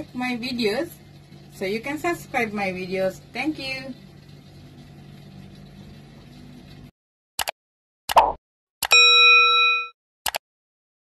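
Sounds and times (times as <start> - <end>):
bell ding: 8.9 - 10.0.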